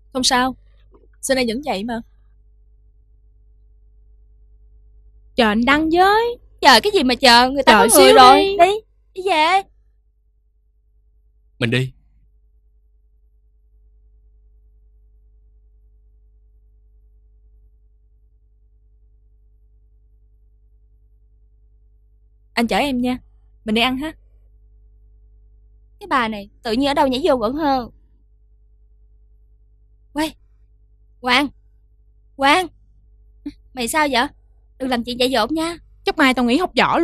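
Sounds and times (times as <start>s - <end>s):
faint steady hum: 0.0s - 37.0s.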